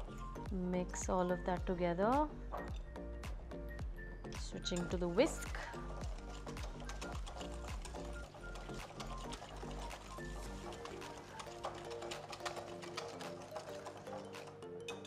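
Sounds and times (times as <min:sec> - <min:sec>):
background music with held notes: 0:00.0 - 0:15.0
whisk clicking against glass bowl: 0:04.7 - 0:15.0.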